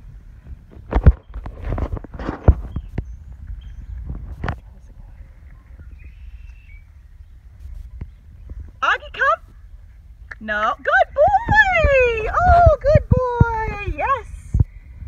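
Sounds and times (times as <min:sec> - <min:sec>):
low rumble: 0:00.0 - 0:15.0
faint high chirp: 0:02.7 - 0:04.0, 0:05.5 - 0:08.4.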